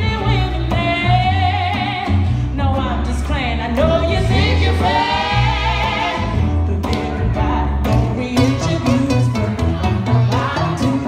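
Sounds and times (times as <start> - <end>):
steady bass notes: 0.0 - 11.0
woman singing: 0.0 - 11.0.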